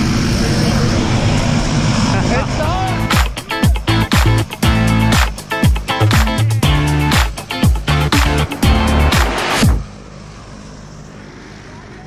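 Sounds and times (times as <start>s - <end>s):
plane engine drone: 0.0s - 12.0s
upbeat funk music: 2.8s - 9.8s.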